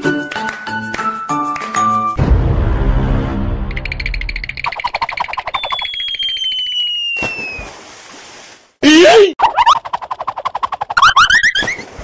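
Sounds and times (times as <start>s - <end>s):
whistle tone sliding down: 5.4s - 7.7s.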